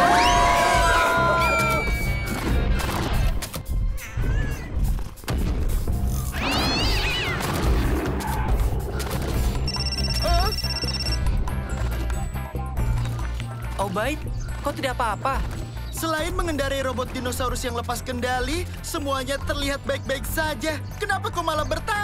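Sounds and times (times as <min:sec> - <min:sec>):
background music: 0:00.0 - 0:22.0
fast high electronic beeping: 0:09.6 - 0:11.2.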